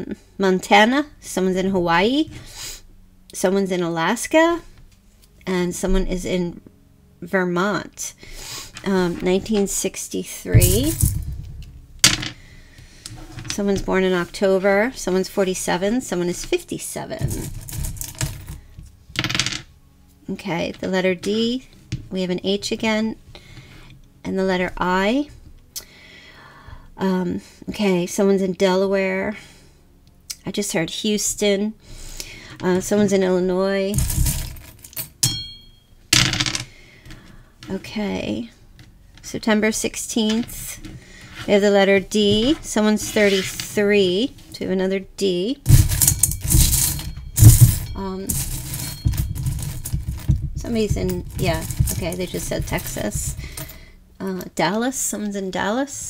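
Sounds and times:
bright scraping or jingling: 45.7s - 53.8s
small hard pieces rattling: 45.7s - 53.8s.

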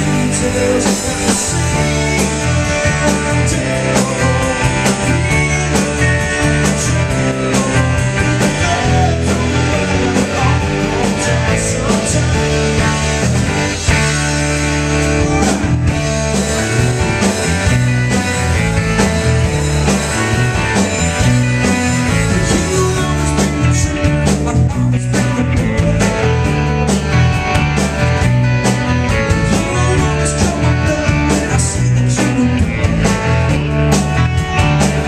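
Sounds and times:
rock band playing live: 0.0s - 35.0s.

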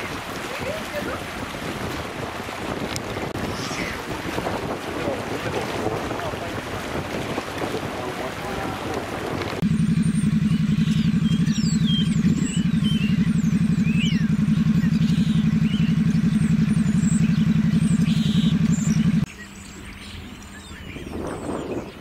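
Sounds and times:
low engine running: 0.0s - 21.5s
starling singing: 9.7s - 19.3s.

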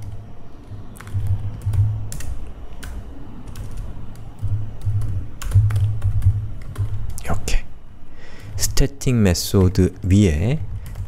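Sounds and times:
keyboard typing: 0.0s - 7.4s, 8.4s - 11.0s.

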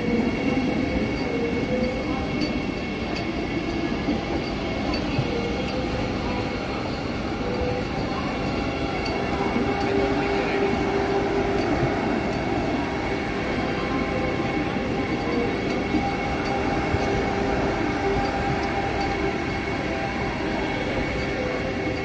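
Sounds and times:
train rolling past: 0.0s - 22.0s.

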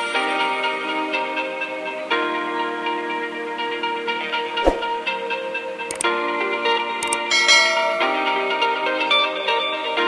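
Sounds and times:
background music: 0.0s - 10.0s
click: 5.9s - 6.1s, 7.0s - 7.3s
bright bell chime: 7.3s - 8.5s.

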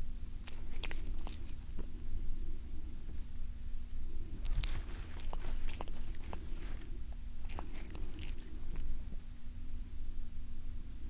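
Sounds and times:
cat licking: 0.4s - 1.8s, 4.4s - 8.9s.

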